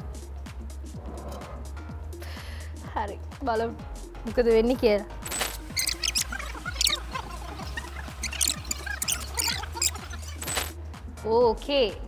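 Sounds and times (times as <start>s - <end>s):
electronic dance music: 5.6s - 10.7s
squeaky sped-up voices: 5.7s - 10.7s.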